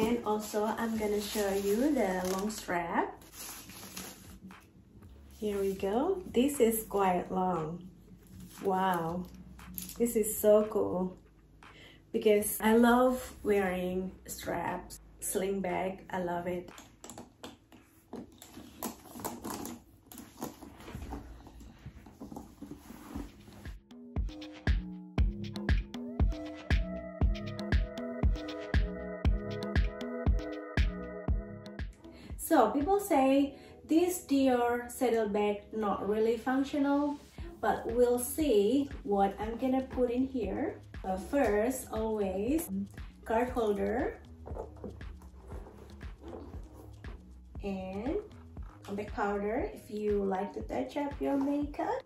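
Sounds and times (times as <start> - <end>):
leather handbag rustling: 0.0 - 4.5, 8.2 - 10.1, 17.9 - 23.6, 43.6 - 47.0.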